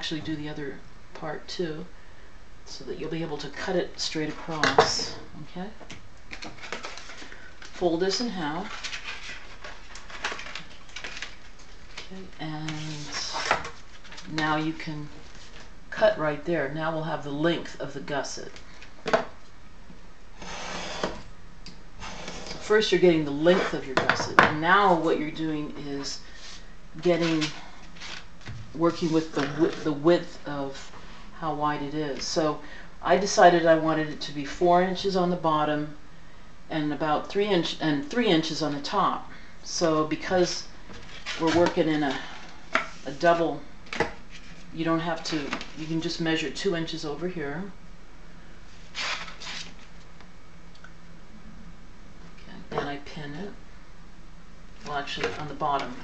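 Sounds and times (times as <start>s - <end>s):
faint room hum: 0.0s - 56.0s
paper and ruler sliding on mat: 20.4s - 21.2s, 22.0s - 22.6s.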